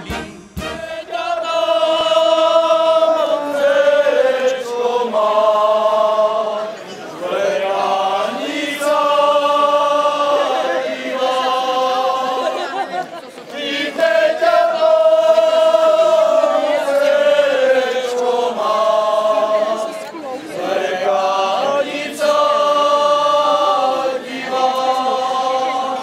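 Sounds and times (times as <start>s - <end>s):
group singing without accompaniment: 0.0s - 26.0s.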